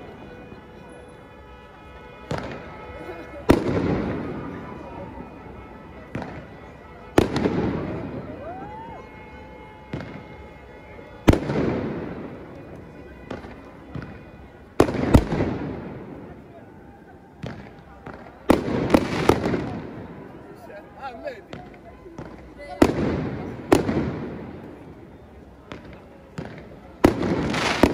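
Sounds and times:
fireworks bangs: 0:02.3 - 0:02.7, 0:03.5 - 0:04.7, 0:06.1 - 0:08.4, 0:09.9 - 0:10.3, 0:11.2 - 0:14.2, 0:14.8 - 0:16.2, 0:17.4 - 0:20.2, 0:21.5 - 0:24.8, 0:25.6 - 0:27.9.

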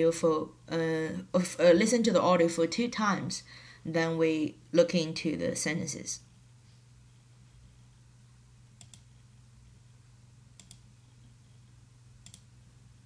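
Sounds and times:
low steady hum: 0:00.0 - 0:13.0
computer mouse double clicks: 0:10.6 - 0:10.8.

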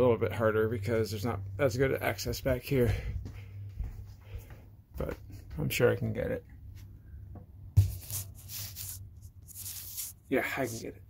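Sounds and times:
rubbing and scuffing: 0:07.8 - 0:10.9.

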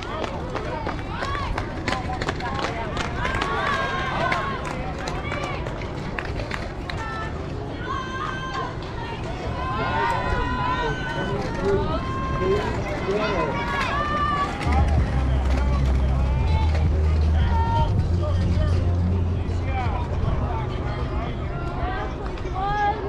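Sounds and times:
crowd babble: 0:00.0 - 0:23.0
high voices cheering: 0:07.0 - 0:18.2
low rumble: 0:14.4 - 0:21.5.

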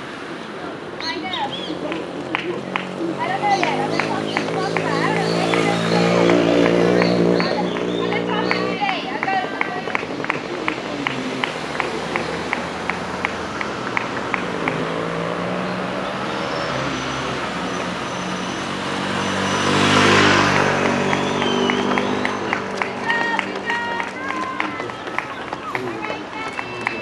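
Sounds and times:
car passing by: 0:00.0 - 0:27.0
voices: 0:00.0 - 0:27.0
runners' footfalls on pavement: 0:01.0 - 0:14.8, 0:20.4 - 0:27.0.

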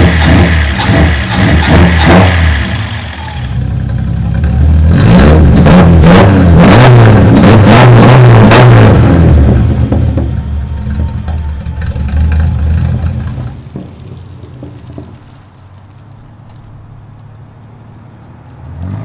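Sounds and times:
car engine revving loudly: 0:00.0 - 0:03.6, 0:04.4 - 0:10.2.

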